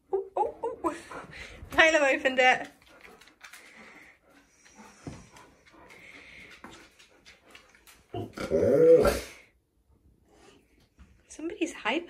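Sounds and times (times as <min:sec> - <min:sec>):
dog breathing: 0:00.9 - 0:08.2
dog claws clicking on tiles: 0:02.2 - 0:08.4.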